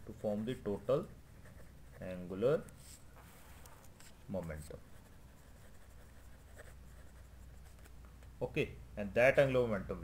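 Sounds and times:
pen scratching on paper: 4.9s - 7.9s.

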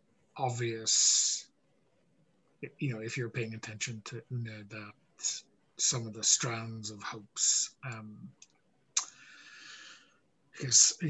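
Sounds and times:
mouth click: 7.8s - 9.2s.

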